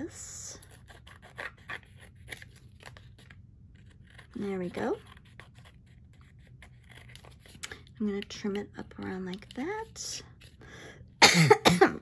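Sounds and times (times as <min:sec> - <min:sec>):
scissors snipping paper: 0:00.5 - 0:10.5.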